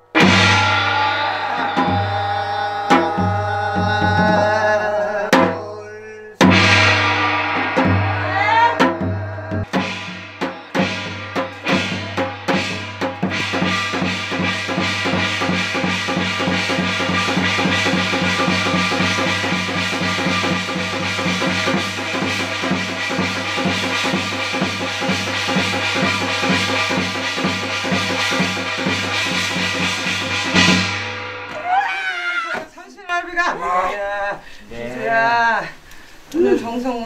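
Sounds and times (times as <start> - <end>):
barrel drum beaten rapidly: 5.3 - 5.6, 6.4 - 31.6.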